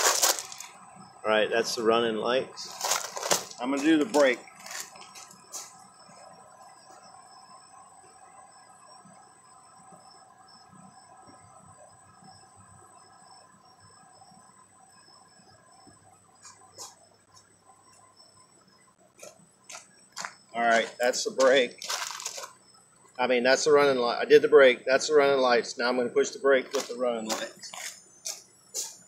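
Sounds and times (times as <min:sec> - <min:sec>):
night insects chorus: 0:00.0 - 0:29.0
pulsing insect trill: 0:00.0 - 0:29.0.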